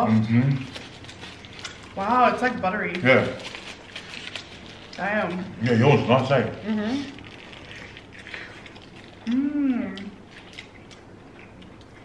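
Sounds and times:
chewing soft bun: 0:00.0 - 0:12.0.

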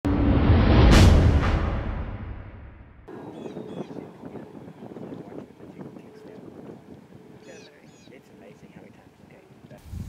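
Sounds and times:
birds chirping: 0:03.1 - 0:09.8
light wind: 0:03.1 - 0:10.0.

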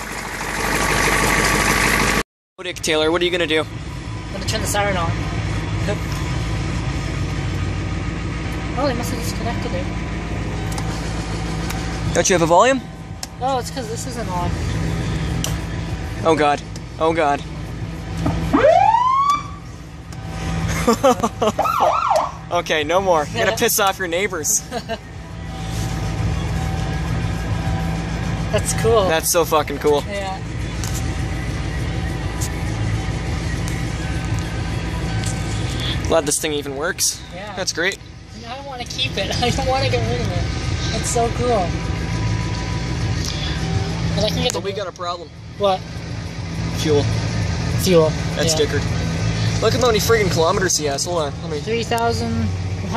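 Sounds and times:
diesel engine idling: 0:00.0 - 0:52.9
ambulance siren wailing: 0:18.3 - 0:19.7, 0:21.4 - 0:22.6
siren yelp: 0:18.4 - 0:19.7, 0:21.6 - 0:22.5.

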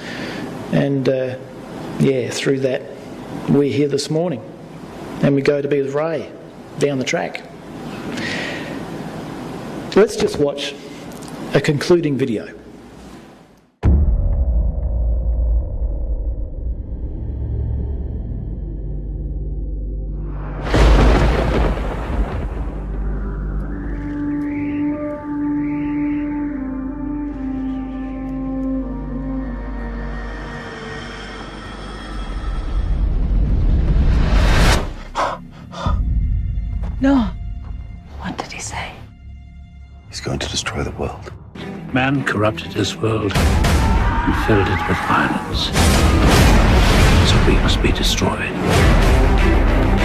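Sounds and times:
deep low soundtrack rumble: 0:13.8 - 0:30.8, 0:32.9 - 0:43.7
tense background music: 0:13.8 - 0:50.0.

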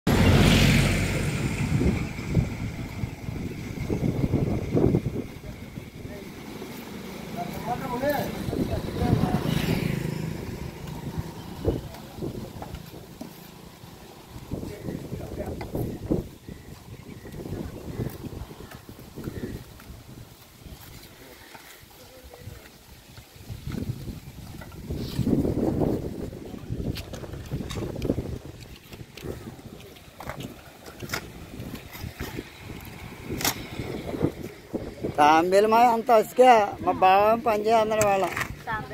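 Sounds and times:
low rumble: 0:00.1 - 0:06.1
wind buffeting microphone: 0:00.1 - 0:06.5, 0:08.3 - 0:13.2, 0:14.2 - 0:21.3, 0:22.4 - 0:38.9
voices in background: 0:04.6 - 0:13.2, 0:20.5 - 0:23.4.

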